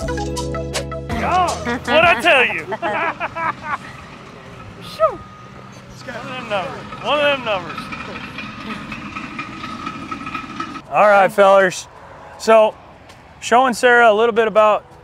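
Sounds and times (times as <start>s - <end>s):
people talking: 1.1s - 3.5s, 4.8s - 5.2s, 6.0s - 8.3s, 10.9s - 12.7s
heavy equipment engine running: 1.3s - 10.9s.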